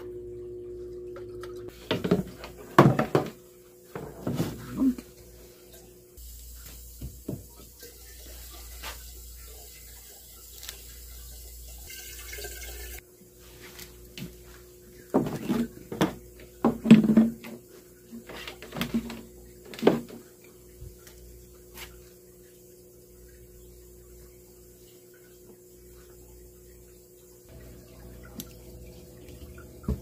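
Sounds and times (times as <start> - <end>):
plastic jug knocks and thumps: 1.9 - 3.4, 15.1 - 17.6
water running into plastic jug: 6.5 - 13.0, 13.8 - 22.1, 27.5 - 30.0.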